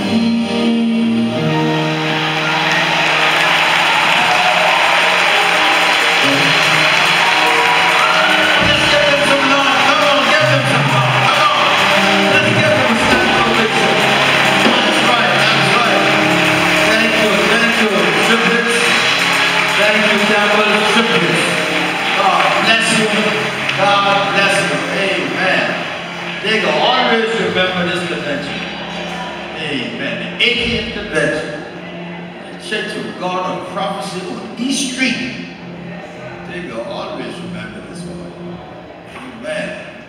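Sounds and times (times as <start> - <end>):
church band music: 0.0 - 40.0
crowd applause and cheering: 1.4 - 40.0.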